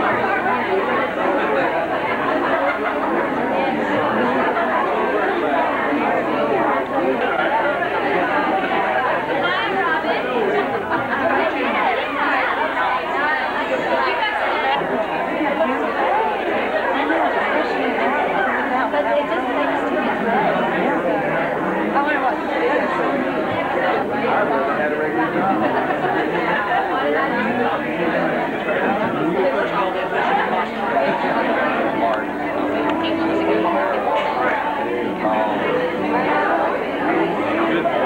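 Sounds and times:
crowd babble: 0.0 - 38.0.

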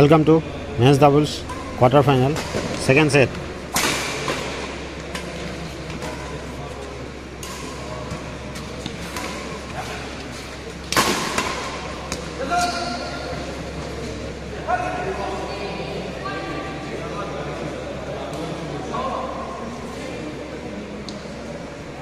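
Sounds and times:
murmur of voices: 0.0 - 22.0
players shouting: 12.2 - 13.6.

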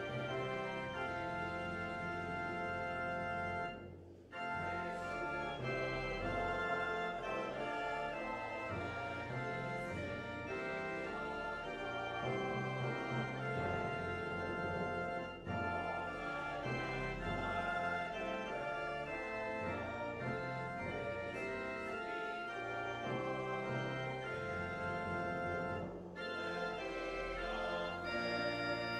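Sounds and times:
church organ playing chords: 0.0 - 28.9.

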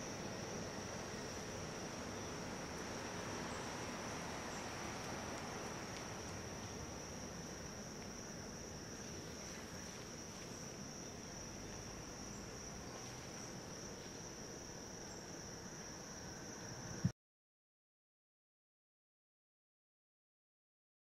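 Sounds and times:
insects trilling: 0.0 - 17.1.

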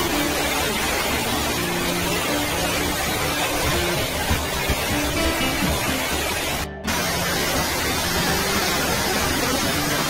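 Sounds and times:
water rushing down: 0.0 - 10.0.

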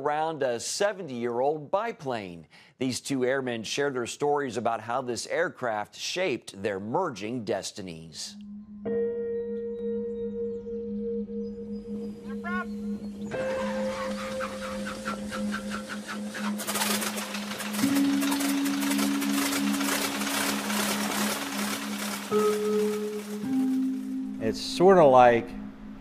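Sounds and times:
soft music with sustained notes: 8.4 - 26.0
propeller plane engine running: 12.1 - 24.4.

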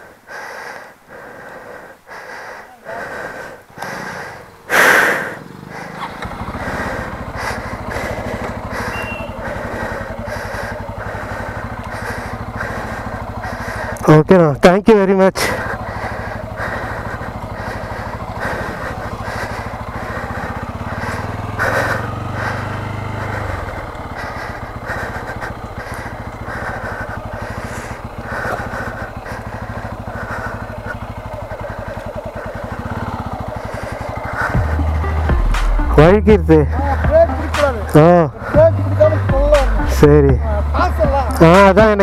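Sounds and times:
motorcycle engine running: 0.0 - 42.0.

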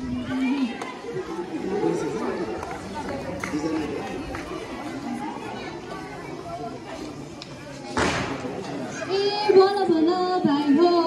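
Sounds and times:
group of people chattering: 0.0 - 11.0.

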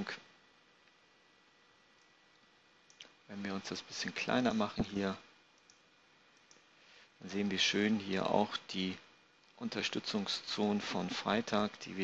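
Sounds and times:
computer mouse clicks: 2.9 - 3.1, 5.6 - 5.8, 6.4 - 6.6.

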